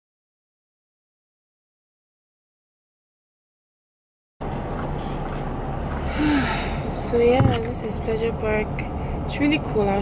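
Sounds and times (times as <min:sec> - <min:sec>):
car engine rumble from inside: 0:04.4 - 0:10.0
road noise: 0:04.4 - 0:10.0.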